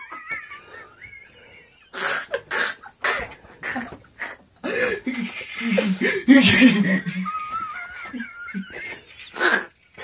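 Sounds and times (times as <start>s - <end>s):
man wheezing laughter: 0.0s - 10.0s.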